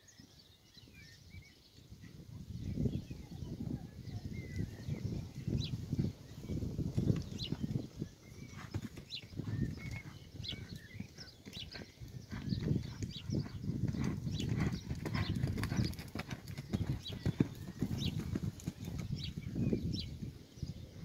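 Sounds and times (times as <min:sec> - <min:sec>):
hoofbeats on sand: 0:06.8 - 0:19.3.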